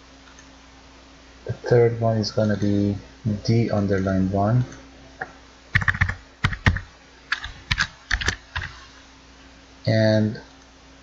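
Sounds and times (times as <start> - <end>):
typing on computer keyboard: 5.8 - 8.8.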